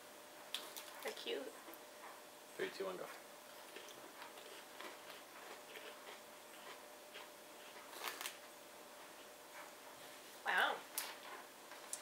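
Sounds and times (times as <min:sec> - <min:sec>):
crackers being chewed: 0:00.5 - 0:01.8, 0:03.5 - 0:10.0, 0:10.9 - 0:12.0.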